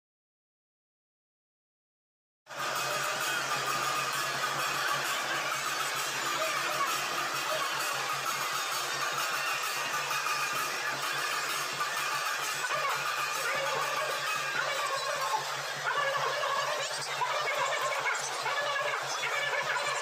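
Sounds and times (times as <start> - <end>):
large outdoor crowd: 2.5 - 20.0
music: 2.5 - 20.0.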